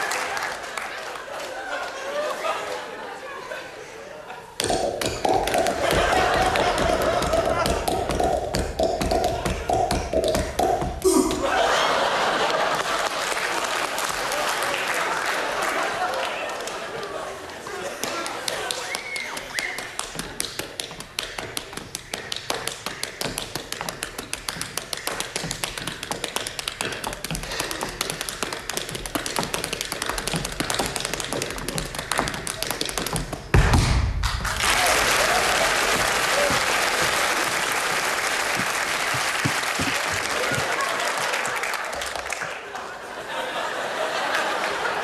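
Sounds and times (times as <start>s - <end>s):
audience applause: 0.0s - 2.9s, 5.4s - 8.2s, 11.1s - 20.4s, 34.2s - 45.0s
tap shoes on wooden stage: 4.6s - 11.4s, 18.0s - 42.8s.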